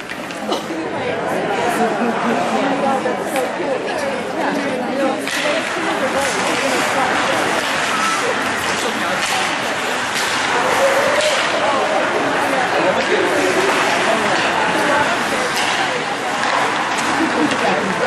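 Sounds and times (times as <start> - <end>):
sticks and puck clacking: 0.0 - 0.6, 4.4 - 18.0
spectators talking: 0.0 - 18.0
skates scraping on ice: 5.2 - 18.0.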